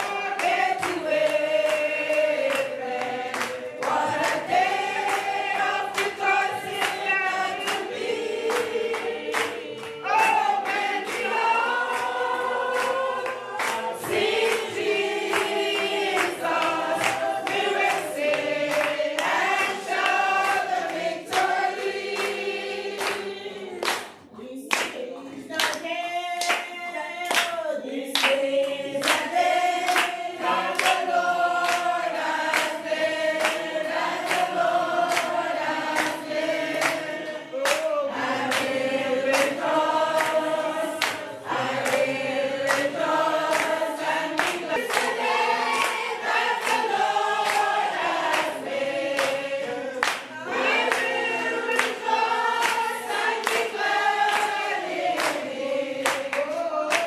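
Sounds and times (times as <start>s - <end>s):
congregation singing: 0.0s - 57.0s
hand claps on a steady beat: 0.0s - 57.0s.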